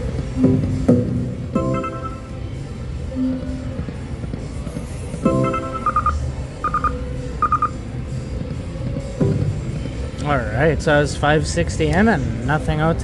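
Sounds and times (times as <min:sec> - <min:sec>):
casino background hum: 0:00.0 - 0:13.0
slot machine chime: 0:01.6 - 0:02.4, 0:05.2 - 0:07.7
high electronic beeps: 0:05.2 - 0:07.8
slot machine reels spinning: 0:05.3 - 0:07.7.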